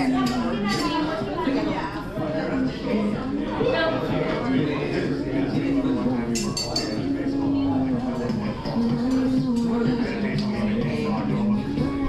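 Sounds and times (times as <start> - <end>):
background music: 0.0 - 12.0
murmur of voices: 0.0 - 12.0
tableware clinking: 6.3 - 7.2.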